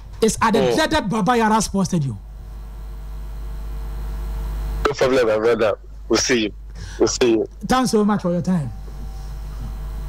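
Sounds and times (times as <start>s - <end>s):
low hum with hiss: 0.0s - 10.0s.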